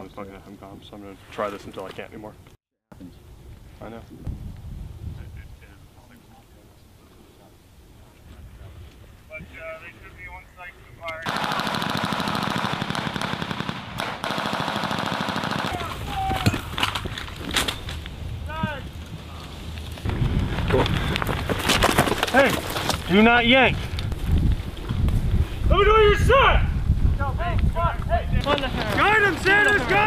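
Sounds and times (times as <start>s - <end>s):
single gunshots and bangs: 11.2s - 16.0s
automatic machine-gun fire: 11.3s - 16.0s.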